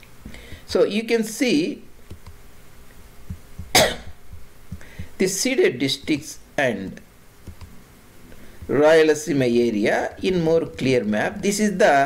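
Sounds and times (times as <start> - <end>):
man coughing: 3.7 - 4.2.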